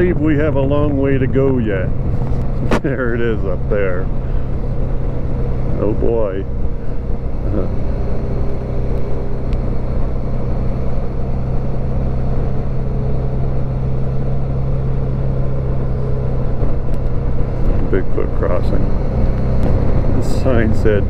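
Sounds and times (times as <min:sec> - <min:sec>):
motorcycle engine cruising: 0:00.0 - 0:21.0
wind and road noise: 0:00.0 - 0:21.0.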